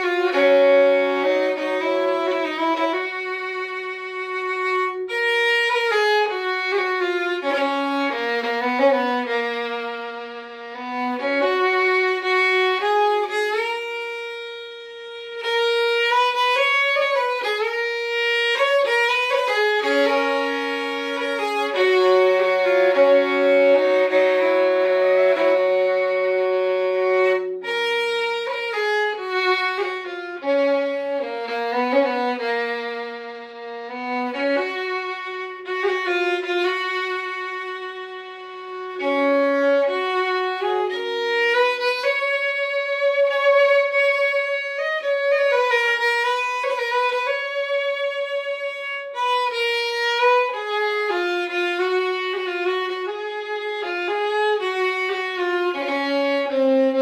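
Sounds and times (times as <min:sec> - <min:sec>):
solo fiddle playing slow air: 0:00.0 - 0:57.0.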